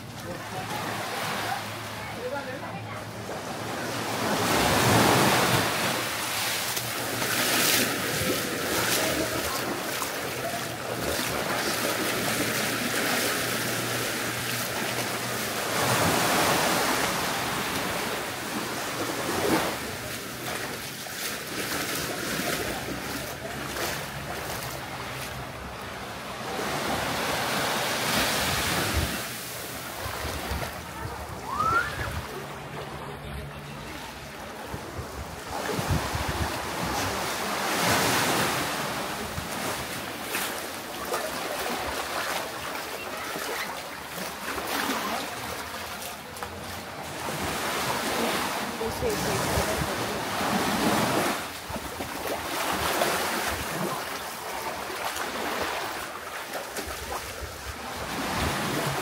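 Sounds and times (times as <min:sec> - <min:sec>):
small waves washing onto sand: 0:00.0 - 0:59.0
wind buffeting microphone: 0:34.6 - 0:37.2.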